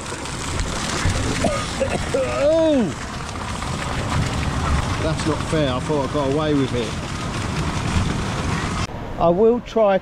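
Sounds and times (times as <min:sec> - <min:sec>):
water spray splashing: 0:00.0 - 0:08.9.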